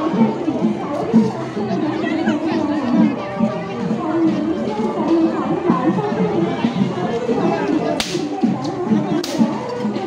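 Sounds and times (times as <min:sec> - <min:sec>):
crowd voices: 0:00.0 - 0:10.0
rope whip crack: 0:08.0 - 0:08.3, 0:09.2 - 0:09.5.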